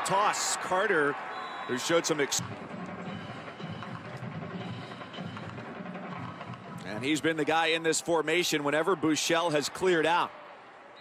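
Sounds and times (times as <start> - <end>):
stadium crowd noise: 0.0 - 11.0
music and drums playing: 2.4 - 7.3.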